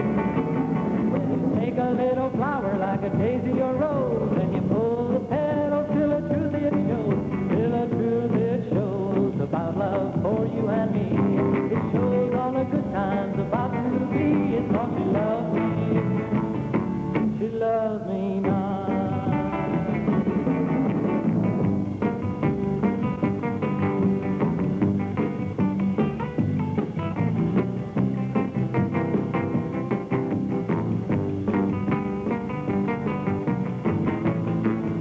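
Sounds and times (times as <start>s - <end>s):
live song with guitar and band: 0.0s - 35.0s.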